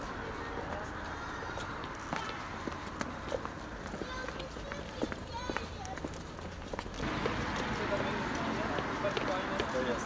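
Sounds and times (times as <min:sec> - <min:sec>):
footsteps on pavement: 0:00.0 - 0:10.0
street background noise: 0:00.0 - 0:10.0.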